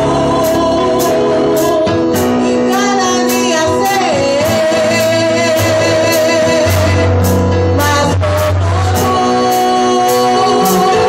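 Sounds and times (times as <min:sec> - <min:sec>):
bass and steady beat: 0:00.0 - 0:11.0
woman singing worship song: 0:00.0 - 0:11.0.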